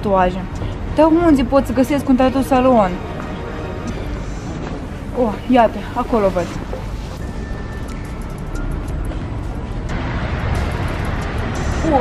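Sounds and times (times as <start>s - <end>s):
background music: 0.0s - 12.0s
traffic rumble: 0.0s - 12.0s.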